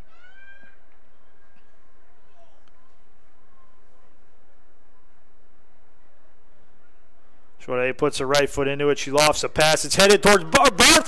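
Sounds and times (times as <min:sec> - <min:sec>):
open field ambience: 0:00.0 - 0:11.0.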